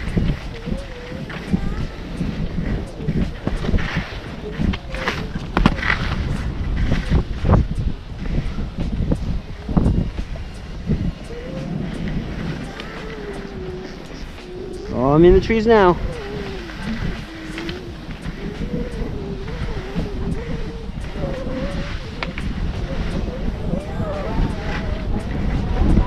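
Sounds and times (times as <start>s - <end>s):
skis scraping over snow: 0.0s - 26.0s
wind buffeting microphone: 0.0s - 26.0s.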